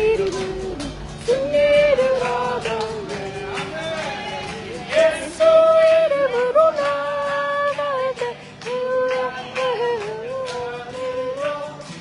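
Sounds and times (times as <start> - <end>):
acoustic guitar: 0.0 - 12.0
person singing praise song: 0.0 - 12.0.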